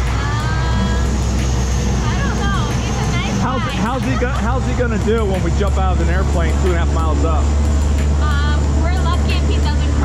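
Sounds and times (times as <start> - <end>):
engine rumbling: 0.0 - 10.0.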